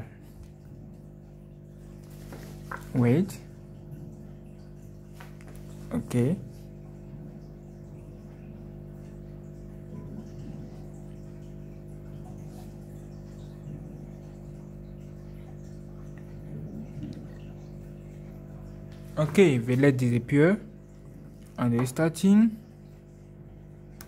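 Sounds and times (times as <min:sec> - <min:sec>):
low tonal hum: 0:00.0 - 0:24.0.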